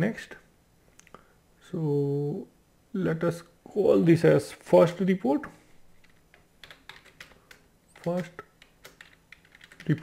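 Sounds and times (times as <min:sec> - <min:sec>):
computer keyboard typing: 0:06.0 - 0:10.0.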